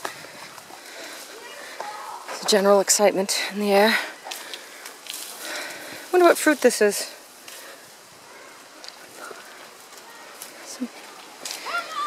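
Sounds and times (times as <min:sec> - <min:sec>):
dry grass rustling and crackling: 0:00.0 - 0:12.0
footsteps through grass: 0:04.1 - 0:12.0.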